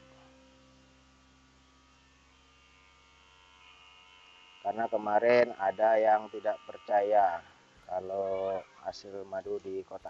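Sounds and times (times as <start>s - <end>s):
small electric pump humming: 0.0s - 10.0s.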